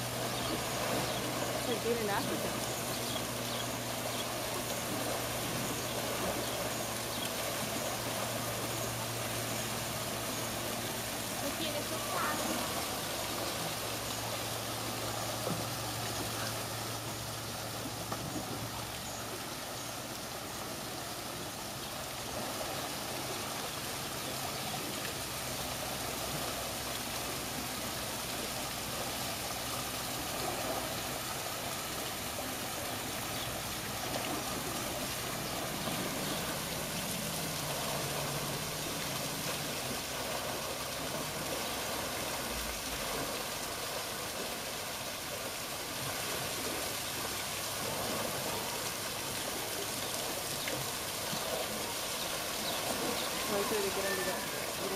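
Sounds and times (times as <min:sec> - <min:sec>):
waterfall trickling into pool: 0:00.0 - 0:54.9.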